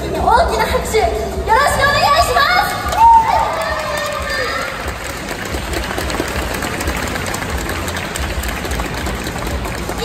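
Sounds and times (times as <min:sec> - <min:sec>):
audience clapping: 0:02.7 - 0:10.0.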